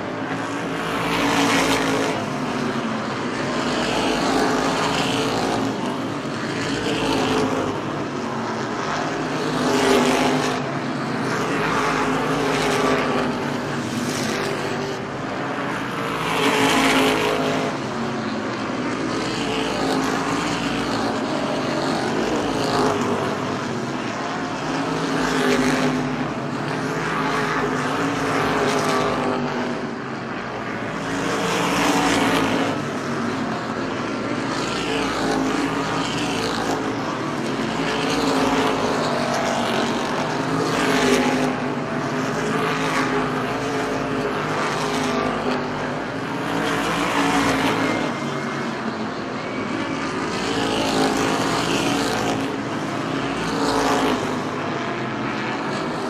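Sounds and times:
race cars passing: 0:00.0 - 0:56.0.

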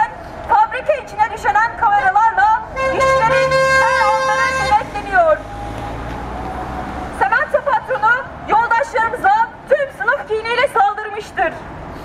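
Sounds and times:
passing traffic rumble: 0:00.0 - 0:12.0
vehicle horn steady tone: 0:02.8 - 0:04.8.

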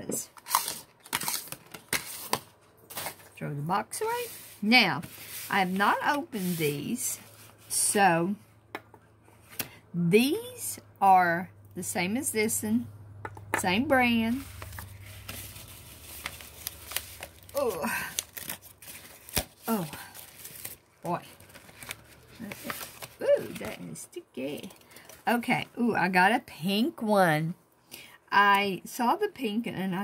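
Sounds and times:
packaging rustle: 0:14.5 - 0:23.7.

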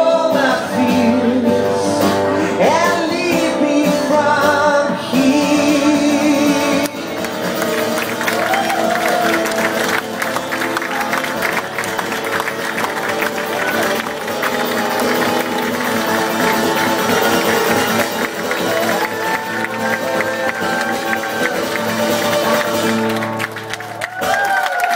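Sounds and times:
acoustic guitar strumming chords: 0:00.0 - 0:23.7.

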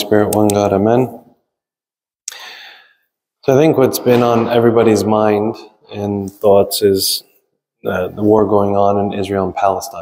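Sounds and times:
breath close to microphone: 0:02.3 - 0:03.1.

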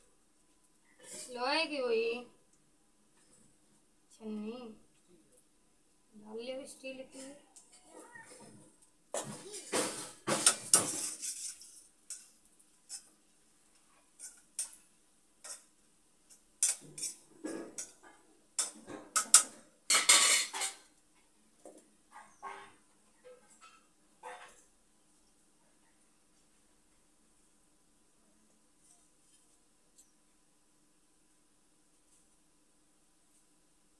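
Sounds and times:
steel utensils clinking and scraping: 0:09.6 - 0:13.1, 0:14.2 - 0:14.8, 0:16.3 - 0:18.0, 0:18.6 - 0:20.8.

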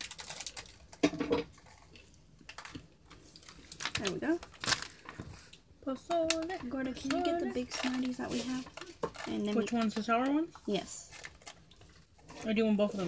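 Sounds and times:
paper towel rustling: 0:06.8 - 0:10.1, 0:10.7 - 0:13.0.

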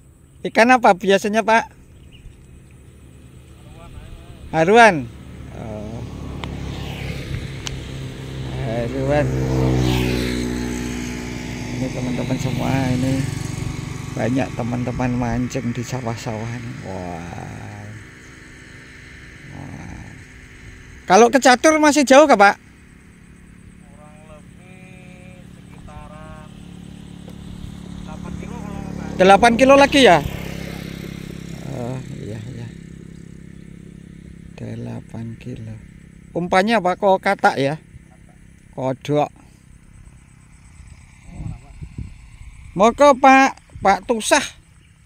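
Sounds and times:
vehicle engine idling: 0:00.0 - 0:45.0.

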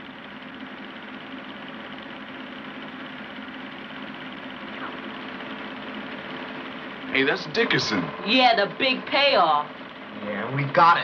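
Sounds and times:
film projector whirring: 0:00.0 - 0:11.0.

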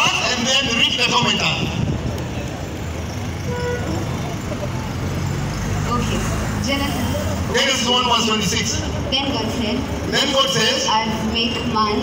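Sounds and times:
faint crowd voices: 0:00.0 - 0:12.0
motor vehicle engine rumble: 0:00.0 - 0:12.0.

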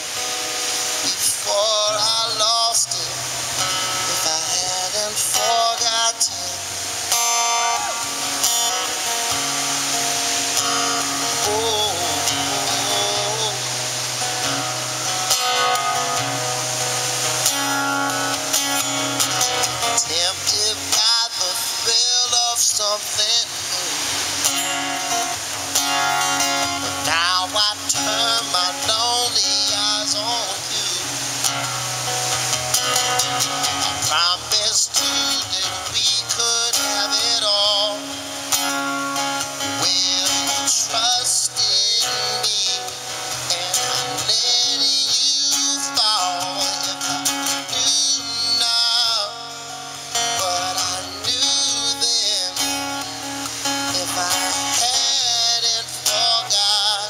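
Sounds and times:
man singing into a microphone: 0:00.0 - 0:25.2, 0:25.8 - 0:32.1, 0:33.0 - 0:57.0
acoustic guitar playing: 0:00.0 - 0:57.0.

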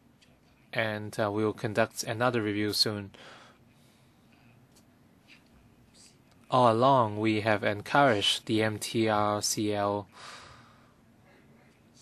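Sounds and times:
breath close to microphone: 0:03.2 - 0:04.2, 0:10.1 - 0:11.0.

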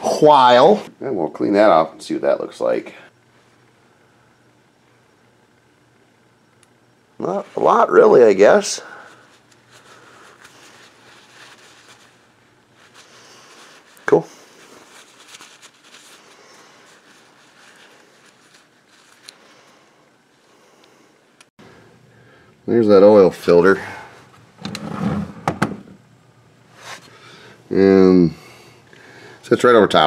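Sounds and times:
paper towel rustling: 0:07.4 - 0:19.3.

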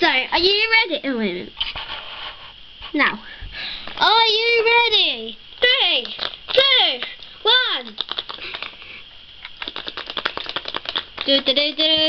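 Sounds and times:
plastic toys clicking and rattling: 0:06.0 - 0:07.1, 0:07.8 - 0:08.8, 0:09.5 - 0:12.0.

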